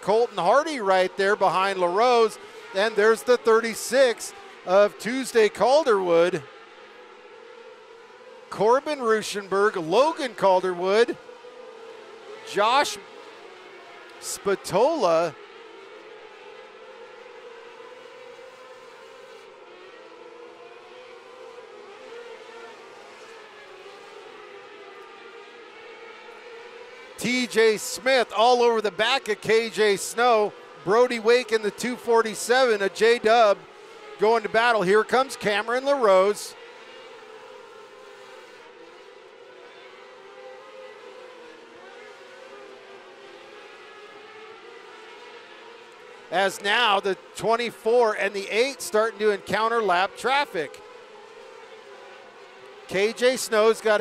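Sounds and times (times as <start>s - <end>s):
racing car engines droning: 0.0s - 54.0s.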